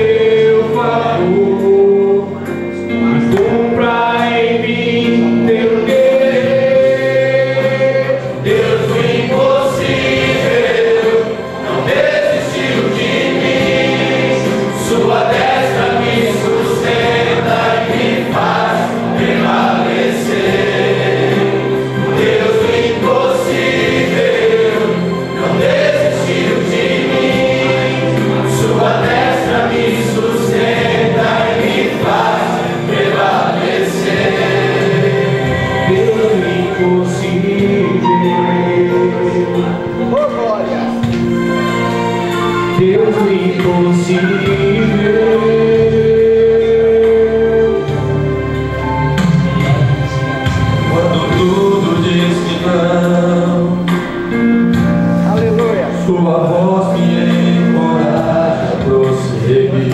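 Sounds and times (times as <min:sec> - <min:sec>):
men singing a hymn: 0:00.0 - 0:49.2, 0:50.3 - 0:59.9.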